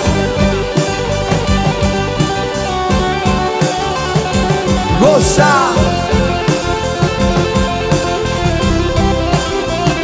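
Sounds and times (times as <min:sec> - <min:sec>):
bass guitar: 0:00.0 - 0:10.0
drum kit beat: 0:00.0 - 0:10.0
electric guitar lead: 0:00.0 - 0:10.0
keyboard: 0:00.0 - 0:10.0.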